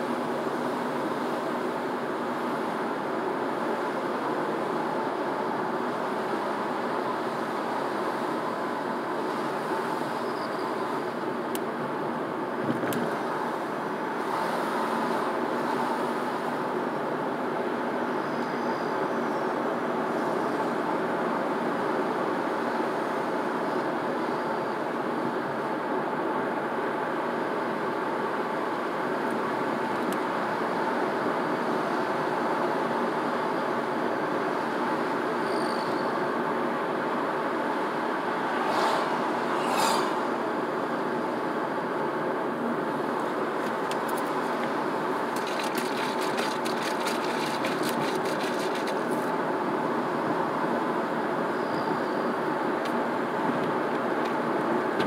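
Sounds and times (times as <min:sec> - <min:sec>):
car road noise from inside: 0:36.3 - 0:51.5.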